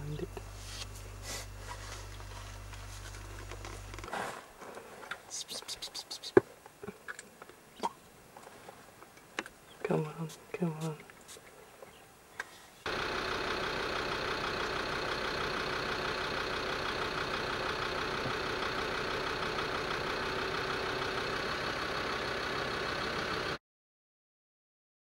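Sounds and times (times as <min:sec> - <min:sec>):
engine idling: 0:00.0 - 0:06.2, 0:12.4 - 0:23.6.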